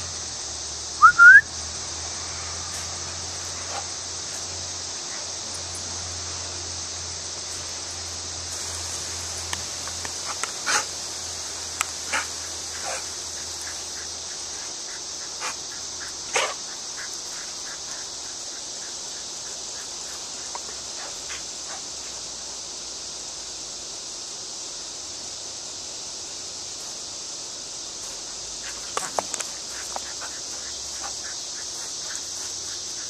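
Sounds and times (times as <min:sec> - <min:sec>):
steady high hiss: 0:00.0 - 0:33.0
person whistling rising notes: 0:01.0 - 0:01.5
dog barking: 0:16.3 - 0:16.6.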